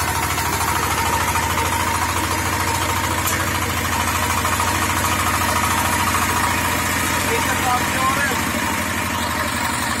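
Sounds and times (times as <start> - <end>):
single-cylinder engine running: 0.0 - 10.0.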